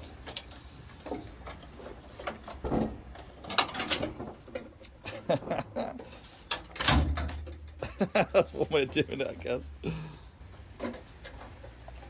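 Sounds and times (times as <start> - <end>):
metal pipes clicking and scraping: 0.0 - 9.4, 10.4 - 12.0
person laughing: 5.0 - 6.2, 7.8 - 9.1, 9.8 - 10.2.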